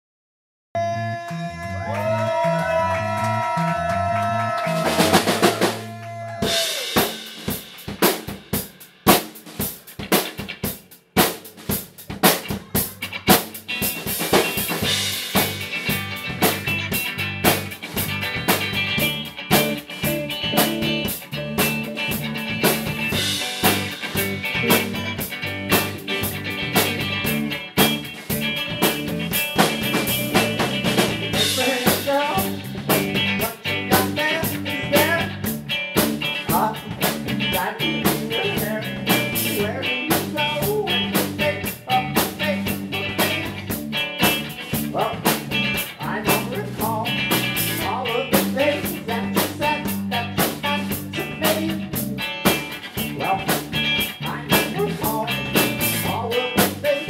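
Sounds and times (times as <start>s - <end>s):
live rock band playing: 3.1s - 57.0s
drum hits: 4.7s - 32.2s.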